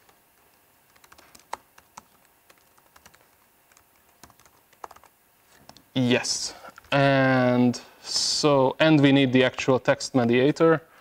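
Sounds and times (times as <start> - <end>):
laptop keyboard typing: 0.0 - 5.8.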